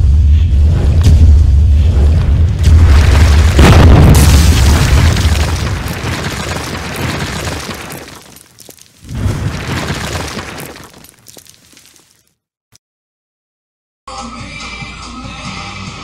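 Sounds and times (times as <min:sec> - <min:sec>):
heavy rumbling boom: 0:00.0 - 0:07.1
crumbling debris: 0:01.9 - 0:12.3.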